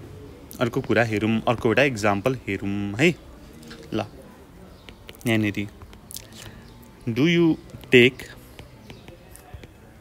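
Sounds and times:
stylus ticking and scratching: 4.8s - 6.9s, 7.6s - 10.0s.

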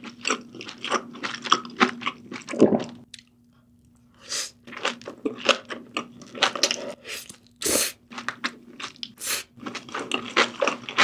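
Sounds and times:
wet crunchy chewing: 0.0s - 3.3s, 4.6s - 11.0s.

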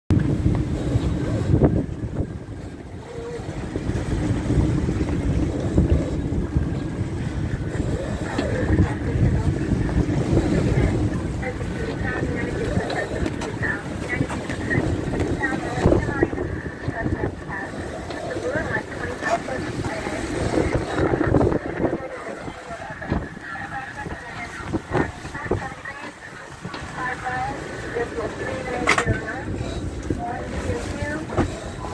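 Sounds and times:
waves breaking past hull: 0.1s - 31.9s
wind buffeting microphone: 0.1s - 31.9s.

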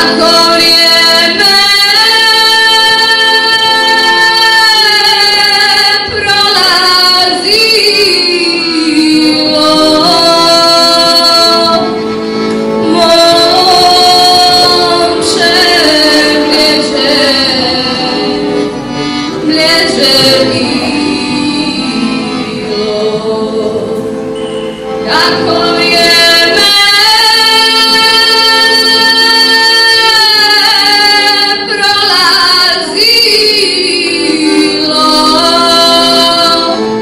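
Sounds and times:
woman singing slow melody: 0.0s - 12.0s, 19.4s - 24.1s.

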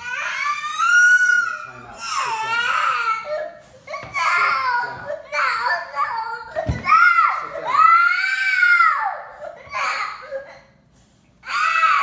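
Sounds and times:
toddler crying: 0.0s - 10.7s, 11.4s - 12.0s.

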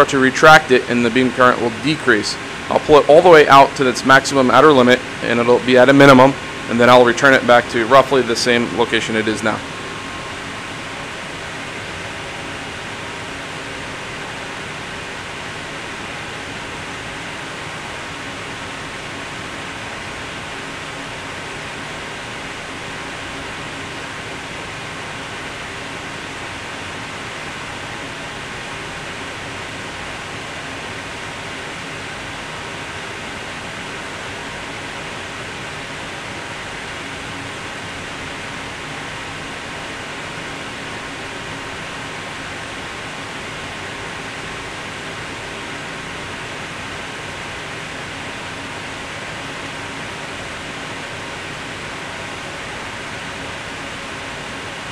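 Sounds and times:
faint high whine: 0.0s - 54.9s
lab equipment hiss and hum: 0.0s - 54.9s.

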